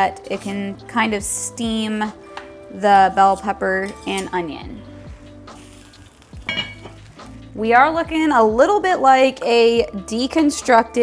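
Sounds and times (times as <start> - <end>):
background music with soft beat: 0.0 - 11.0
meat and vegetables sizzling in a pot: 5.0 - 7.5.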